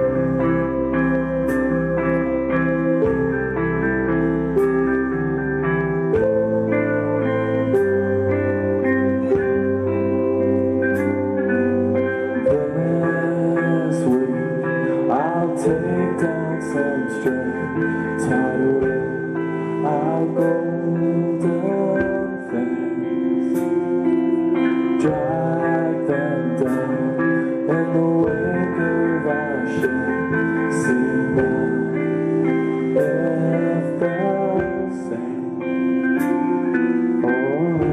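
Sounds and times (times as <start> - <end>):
electric guitar chords: 0.0 - 37.9
lead guitar bending notes: 0.0 - 37.9
live rock band playing: 0.0 - 37.9.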